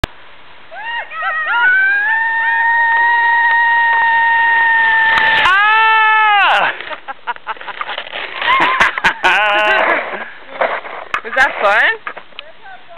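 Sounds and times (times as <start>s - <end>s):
high-pitched squeal of delight: 0.7s - 6.7s
lower cry: 0.7s - 6.8s
laughter: 6.6s - 10.0s
sled knocks and scrapes: 6.7s - 12.3s.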